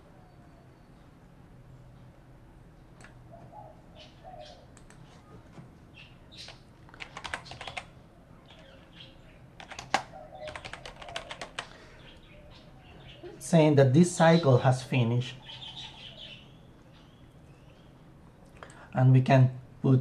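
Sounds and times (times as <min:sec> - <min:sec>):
computer keyboard typing: 0:06.4 - 0:07.9, 0:09.6 - 0:11.7.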